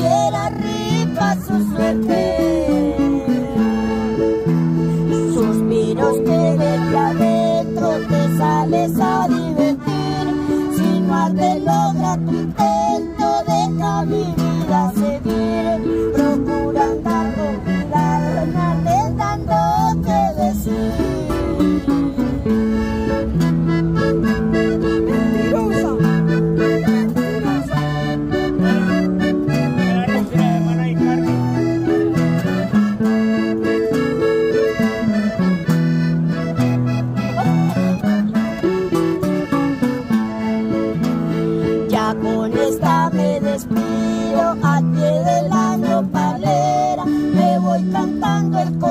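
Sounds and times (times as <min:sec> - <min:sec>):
button accordion melody: 0:00.0 - 0:48.9
strummed acoustic guitar: 0:00.0 - 0:48.9
bass line: 0:13.6 - 0:42.1.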